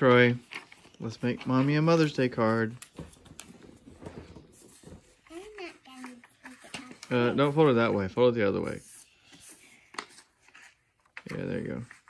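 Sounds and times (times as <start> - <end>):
paper rustling: 0.2 - 12.0.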